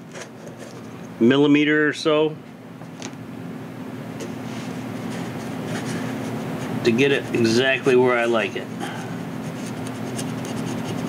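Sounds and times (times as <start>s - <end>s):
steady low hum: 0.0s - 11.0s
craft knife scraping foam: 9.4s - 11.0s.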